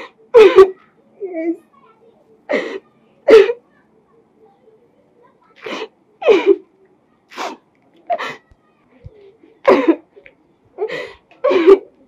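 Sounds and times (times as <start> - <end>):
woman sobbing: 5.6 - 6.6, 10.8 - 12.0.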